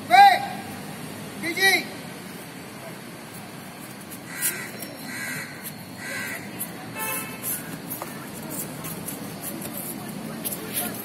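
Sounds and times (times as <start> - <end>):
crow cawing: 4.3 - 6.5.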